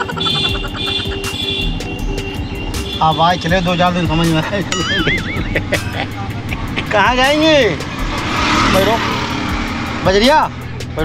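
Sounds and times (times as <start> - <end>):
auto-rickshaw engine running: 0.0 - 11.0
road noise: 0.0 - 11.0
warbling tone: 4.7 - 5.8.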